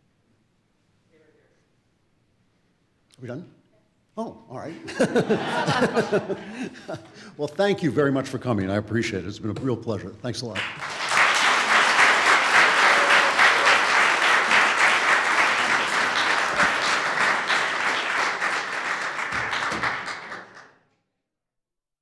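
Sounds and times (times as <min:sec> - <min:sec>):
audience applauding: 0:05.0 - 0:06.8, 0:10.6 - 0:20.8.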